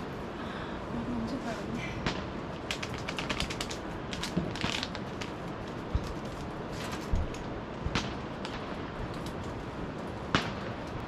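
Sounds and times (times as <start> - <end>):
paper bag crinkling: 2.7 - 7.3.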